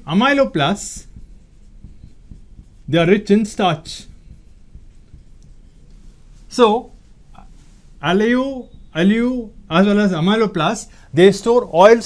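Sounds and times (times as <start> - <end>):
marker pen writing on whiteboard: 0.0 - 7.6
low steady hum: 0.0 - 12.0.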